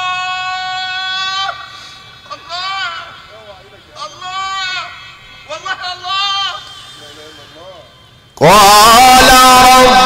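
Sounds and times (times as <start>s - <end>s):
man reciting melodically: 8.3s - 10.0s.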